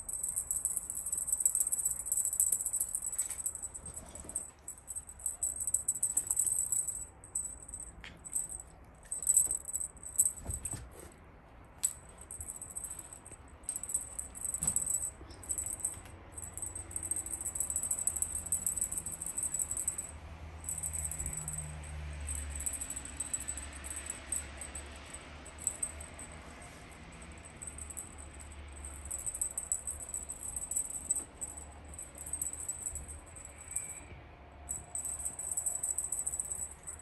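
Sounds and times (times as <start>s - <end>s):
wand toy rattling and jingling: 0.0s - 10.9s, 11.8s - 26.8s, 27.4s - 34.0s, 34.7s - 37.0s.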